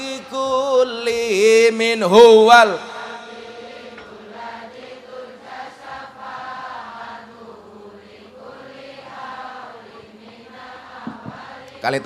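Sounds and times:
crowd chanting in unison: 2.5 - 12.0.

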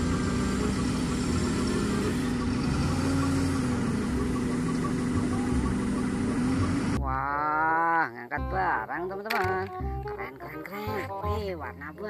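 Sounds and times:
forklift engine running: 0.0 - 7.0.

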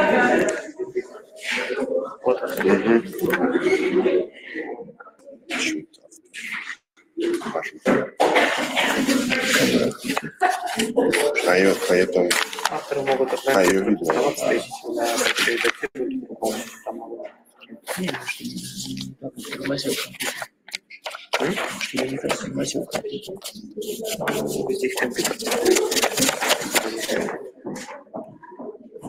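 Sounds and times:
people talking indistinctly: 0.0 - 29.0.

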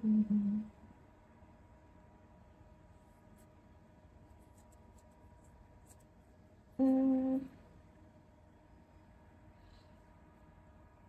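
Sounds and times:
woman humming a note: 0.0 - 0.7, 6.8 - 7.6.

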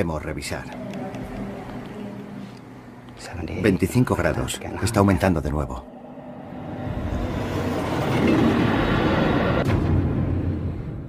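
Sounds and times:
loud rumbling: 5.8 - 11.0.

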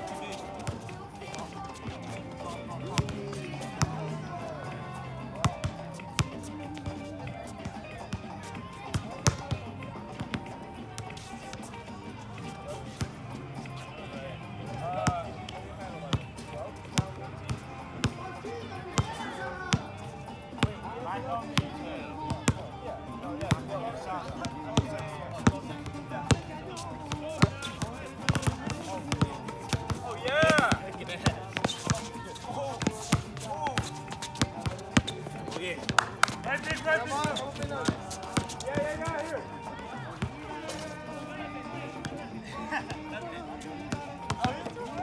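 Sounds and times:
players calling out: 25.6 - 41.3
basketball dribbling on hard court: 27.4 - 32.1.

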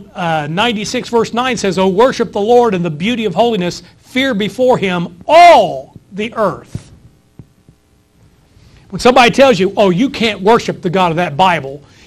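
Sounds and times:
man speaking: 0.0 - 7.0, 8.9 - 11.8
faint steady hum: 0.0 - 12.0.

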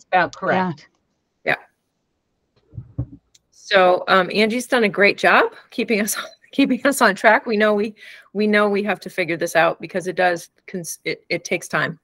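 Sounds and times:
person talking: 0.0 - 0.8, 2.8 - 8.8.

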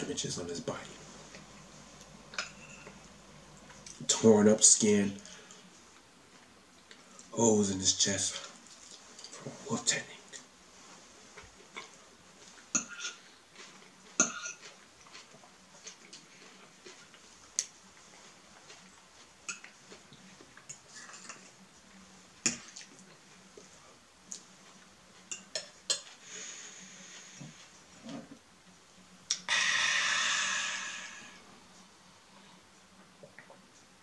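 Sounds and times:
soft chewing: 0.1 - 4.2, 4.9 - 7.3, 8.3 - 29.5, 31.2 - 34.0
hissing rush: 29.5 - 31.4.

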